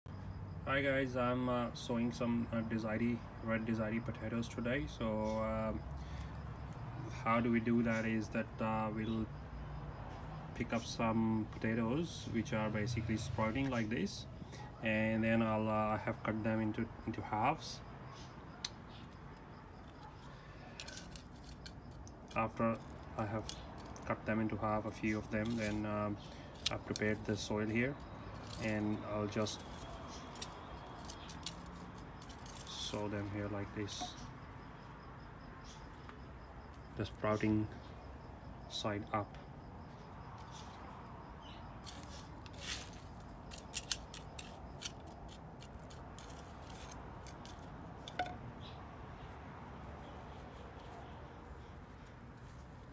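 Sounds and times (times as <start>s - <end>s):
trowel scraping soil: 25.0s - 33.4s, 41.8s - 47.7s
small objects clicking and tapping: 29.6s - 32.8s, 41.8s - 48.5s.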